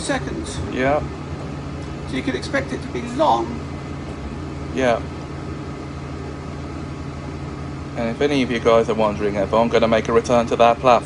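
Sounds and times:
train carriage rumble and hum: 0.0 - 11.0.

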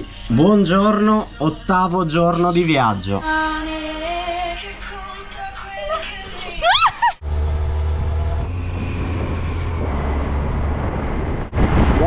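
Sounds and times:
wind and road rumble: 6.0 - 12.0.

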